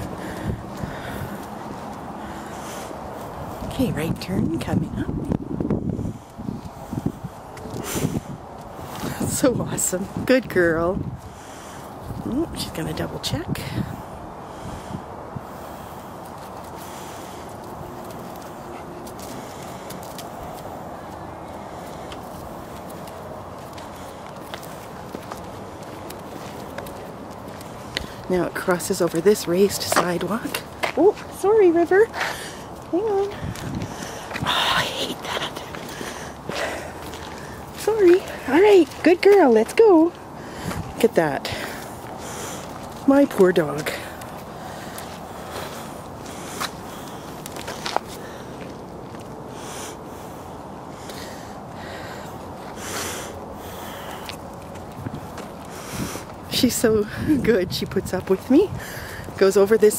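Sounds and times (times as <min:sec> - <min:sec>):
footsteps on concrete: 0:00.0 - 0:13.9, 0:15.4 - 0:49.5, 0:52.0 - 0:59.9
wind on microphone: 0:00.0 - 0:20.9, 0:32.7 - 0:39.1, 0:39.7 - 0:43.0, 0:54.8 - 0:59.9
outdoor background noise: 0:00.0 - 0:59.9.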